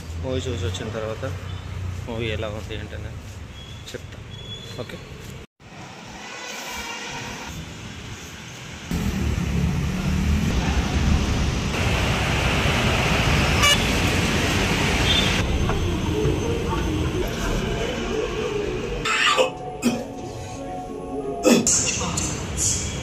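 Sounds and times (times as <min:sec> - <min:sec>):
road traffic noise: 0:00.0 - 0:23.0
car horn toot: 0:13.6 - 0:13.9.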